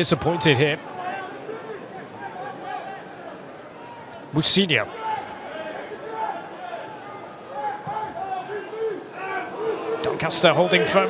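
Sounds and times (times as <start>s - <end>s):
crowd murmur: 0.0s - 11.0s
spectators shouting: 4.8s - 11.0s.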